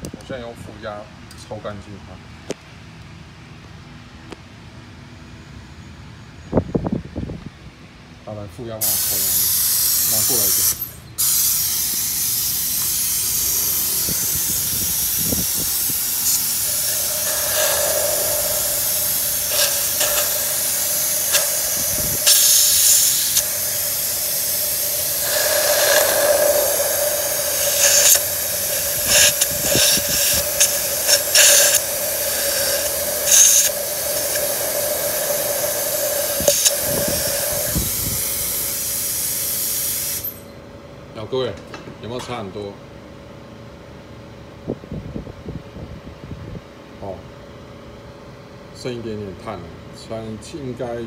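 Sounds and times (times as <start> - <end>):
vacuum suction hissing rush: 8.8 - 10.6, 11.2 - 40.4.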